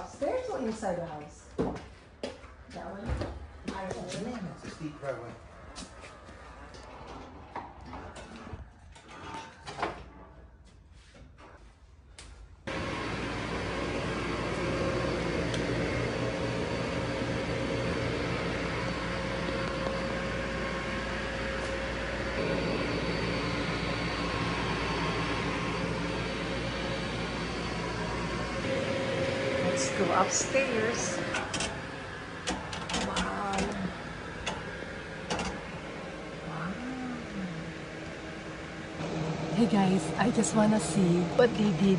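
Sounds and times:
dehumidifier fan hum: 12.1 - 41.9.

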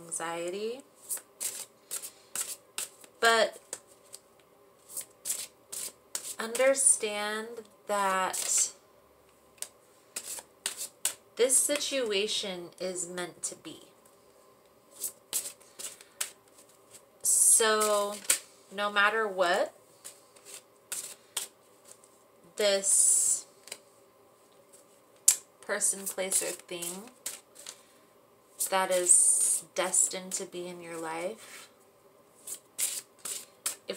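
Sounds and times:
cards being shuffled: 1.0 - 4.2, 4.8 - 6.7, 8.3 - 8.7, 9.6 - 11.2, 14.9 - 17.0, 17.8 - 18.5, 20.0 - 22.2, 23.6 - 23.8, 26.0 - 27.9, 32.4 - 33.9
cards snapping and rustling: 17.9 - 18.5, 26.3 - 27.8, 32.5 - 33.9.

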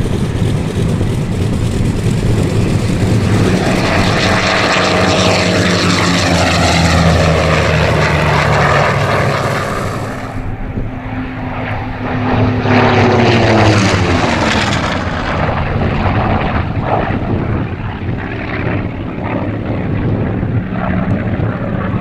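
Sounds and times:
propeller plane engine drone: 0.0 - 22.0.

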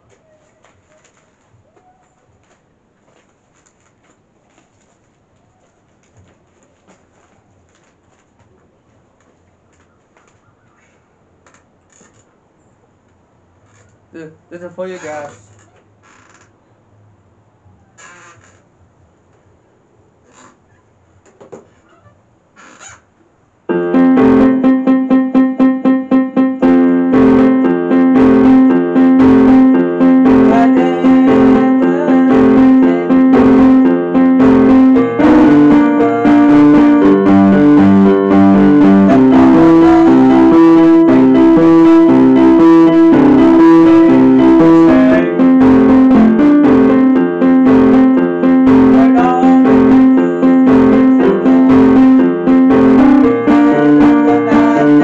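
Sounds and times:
small rustles and clicks: 0.0 - 12.3
electronic keyboard piano chords: 23.7 - 55.0.

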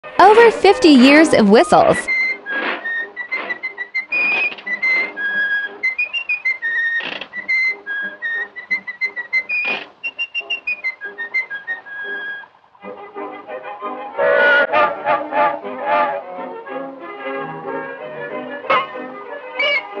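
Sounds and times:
music with low rich notes: 0.0 - 20.0
whistled tune: 1.4 - 12.6, 13.5 - 16.4, 17.2 - 20.0
rhythmic music backing: 12.9 - 19.4.

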